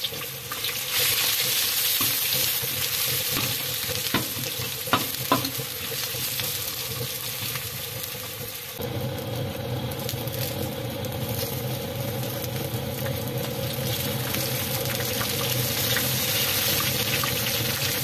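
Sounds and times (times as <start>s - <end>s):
onions sizzling in a pan: 0.0s - 18.0s.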